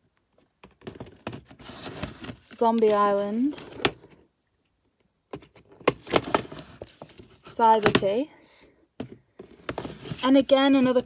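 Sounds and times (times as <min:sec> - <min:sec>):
plastic cases clicking and scraping: 0:00.3 - 0:04.2, 0:05.3 - 0:08.2, 0:09.0 - 0:11.0.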